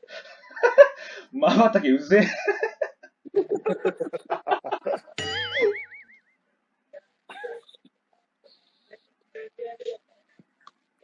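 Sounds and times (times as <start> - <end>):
cartoon boing sound effect: 5.2 - 6.2.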